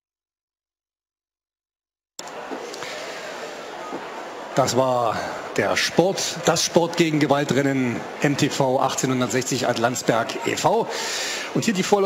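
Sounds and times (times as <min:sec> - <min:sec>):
background murmur and hiss: 0:02.2 - 0:12.0.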